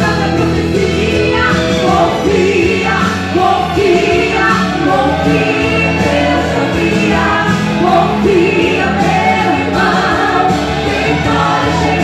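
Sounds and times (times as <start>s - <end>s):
women singing praise song: 0.0s - 12.0s.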